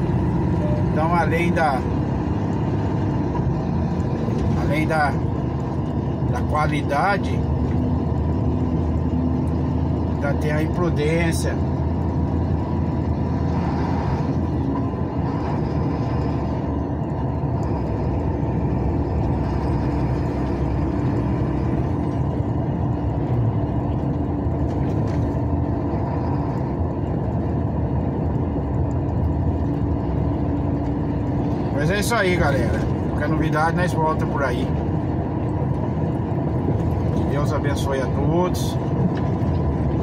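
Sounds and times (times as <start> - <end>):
engine and tyre rumble: 0.0 - 40.0.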